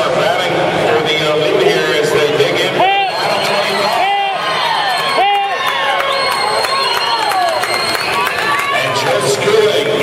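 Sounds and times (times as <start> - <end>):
spectators shouting and cheering: 0.0 - 10.0.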